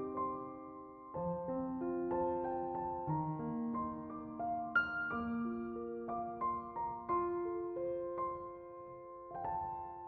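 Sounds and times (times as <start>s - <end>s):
slow piano music: 0.0s - 10.0s.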